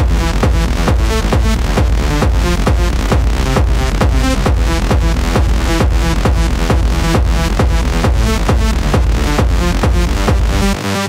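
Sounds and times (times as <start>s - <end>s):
techno kick drum: 0.0s - 10.8s.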